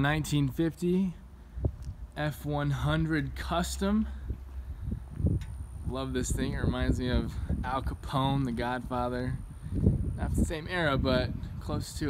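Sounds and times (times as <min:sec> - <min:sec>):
wind rumbling on microphone: 0:01.4 - 0:12.0.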